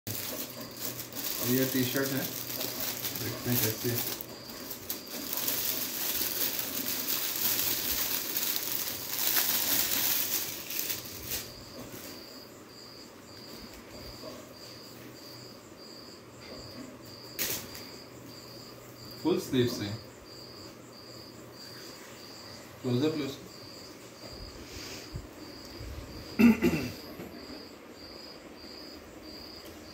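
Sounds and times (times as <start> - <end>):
plastic bag crinkling: 0.1 - 11.6
insect chirping: 0.1 - 29.9.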